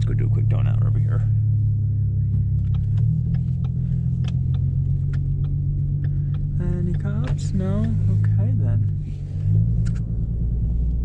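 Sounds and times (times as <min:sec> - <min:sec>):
car engine droning in cabin: 0:00.0 - 0:11.0.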